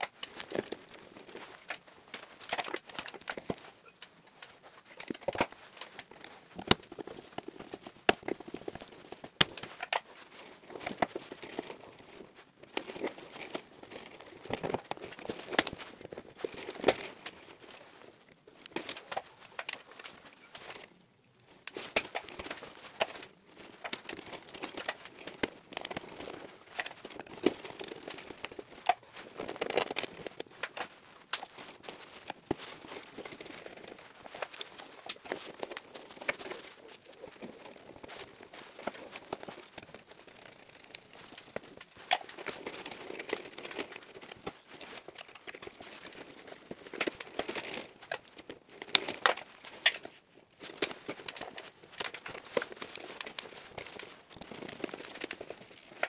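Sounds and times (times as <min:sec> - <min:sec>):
rustling: 0:00.0 - 0:56.0
stiff cables being bent: 0:00.0 - 0:56.0.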